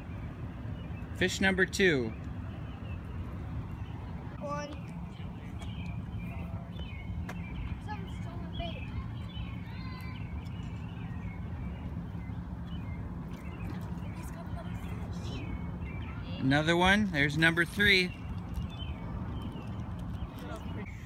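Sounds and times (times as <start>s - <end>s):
faint constant hum: 0.0s - 21.0s.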